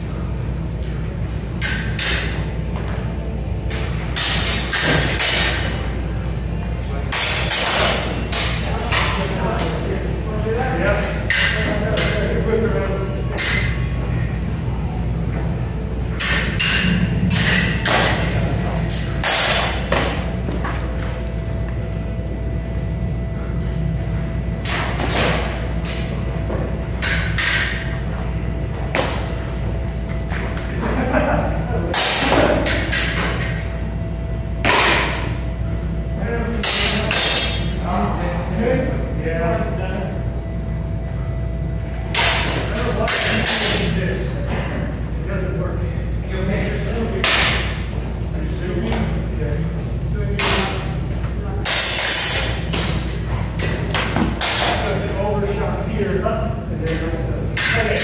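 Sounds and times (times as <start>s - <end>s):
low room hum: 0.0s - 58.0s
steel swords clashing: 1.6s - 2.4s, 3.7s - 6.1s, 7.1s - 9.0s, 11.1s - 12.2s, 13.4s - 13.8s, 16.2s - 20.0s, 27.0s - 27.9s, 31.9s - 33.6s, 36.6s - 37.8s, 42.1s - 44.3s, 50.4s - 53.8s, 54.4s - 55.2s, 57.6s - 58.0s.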